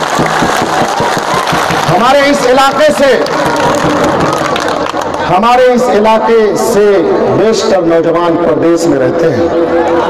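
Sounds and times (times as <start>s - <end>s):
crowd applauding: 0.0s - 5.8s.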